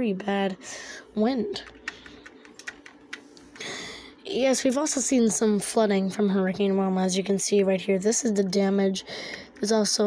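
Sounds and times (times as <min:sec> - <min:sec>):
computer keys clicking: 0:01.6 - 0:03.3.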